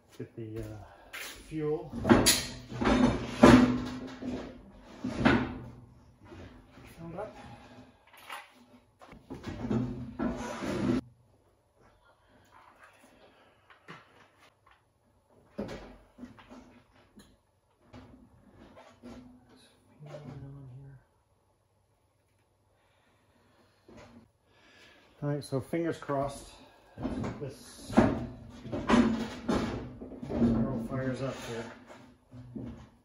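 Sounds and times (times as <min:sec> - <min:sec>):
tools and parts clunking: 0:01.2 - 0:06.9, 0:08.1 - 0:11.0, 0:27.0 - 0:33.0.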